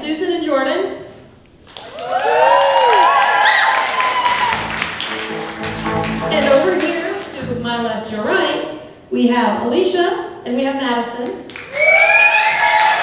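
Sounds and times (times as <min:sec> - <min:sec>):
audience clapping: 0:01.6 - 0:08.4, 0:11.5 - 0:13.0
live band playing: 0:04.3 - 0:08.8.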